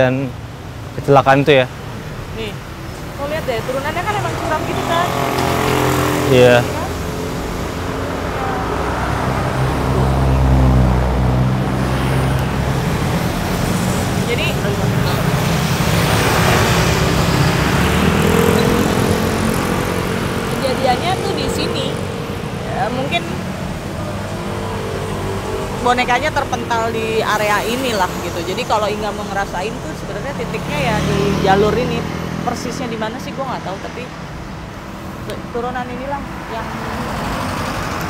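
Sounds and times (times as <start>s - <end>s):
cars and motorbikes driving past: 0.0s - 38.0s
tyre and engine noise: 0.0s - 38.0s.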